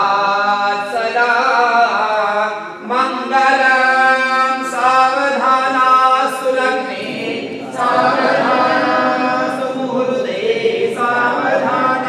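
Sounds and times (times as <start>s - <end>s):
voices singing devotional chant: 0.0s - 12.0s.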